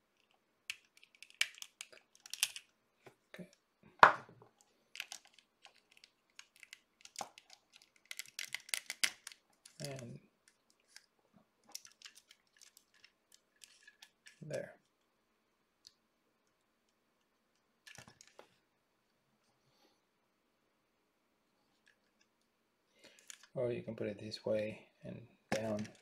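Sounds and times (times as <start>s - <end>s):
plastic parts clicking: 0.2s - 2.7s, 4.9s - 11.0s, 11.7s - 14.4s, 17.8s - 18.4s, 23.1s - 23.5s, 25.5s - 26.0s.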